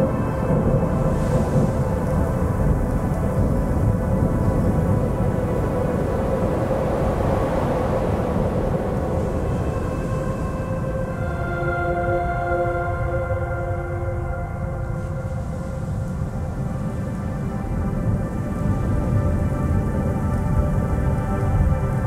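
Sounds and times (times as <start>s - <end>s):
low rolling thunder rumble: 0.0s - 11.6s
ambient drone music: 0.0s - 22.0s.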